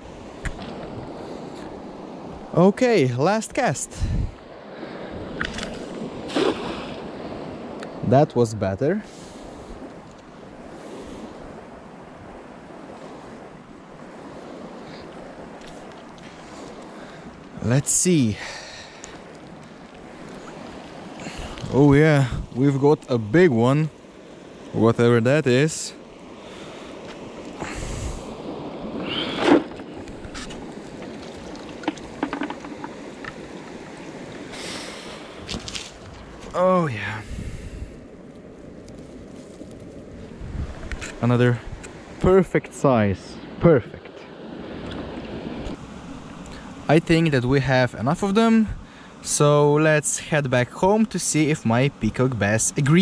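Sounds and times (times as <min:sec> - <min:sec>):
stream water: 0:00.0 - 0:53.0
wind on microphone: 0:03.9 - 0:08.1, 0:19.6 - 0:22.6, 0:27.5 - 0:42.2.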